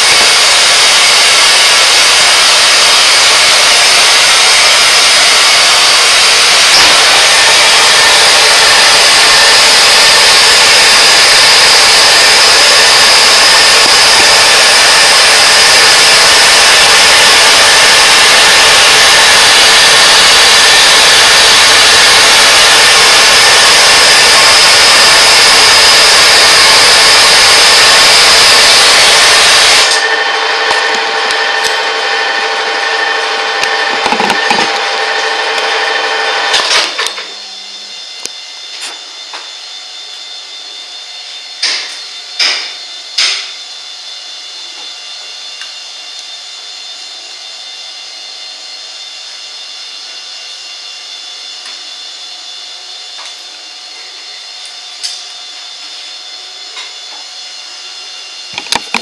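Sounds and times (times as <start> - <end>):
flame-spray gun hissing: 0.0 - 31.9
steady machine hum: 0.0 - 39.2.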